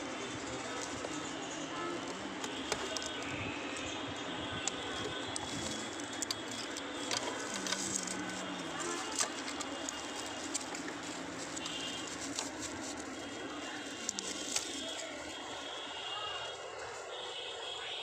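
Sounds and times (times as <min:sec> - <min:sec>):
steady background noise: 0:00.0 - 0:18.0
hands handling plastic parts: 0:01.9 - 0:03.3, 0:04.6 - 0:15.6.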